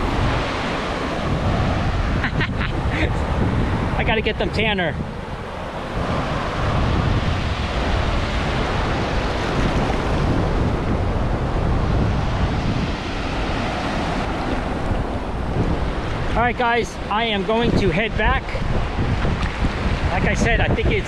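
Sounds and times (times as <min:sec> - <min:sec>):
steady low rumble: 0:00.0 - 0:17.4
ocean surf washing up: 0:00.0 - 0:21.0
wind buffeting microphone: 0:00.0 - 0:21.0.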